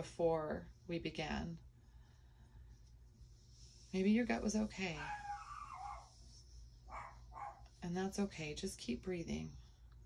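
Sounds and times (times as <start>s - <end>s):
dog whining: 5.0s - 6.1s.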